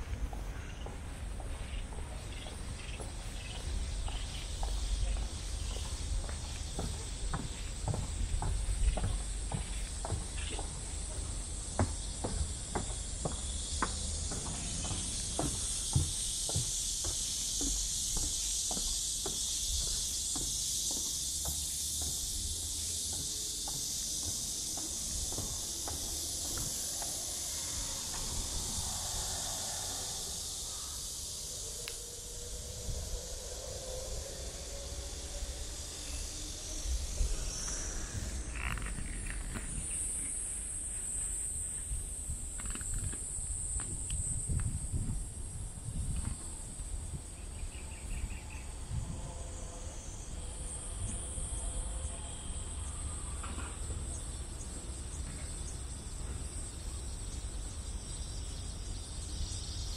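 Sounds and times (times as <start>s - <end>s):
footsteps on wooden boardwalk: 0.0s - 48.5s
high-pitched insect chorus: 0.0s - 59.9s.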